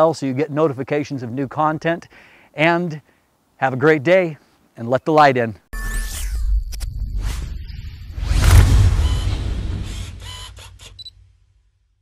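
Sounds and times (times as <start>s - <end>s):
low rumble: 8.1s - 10.3s.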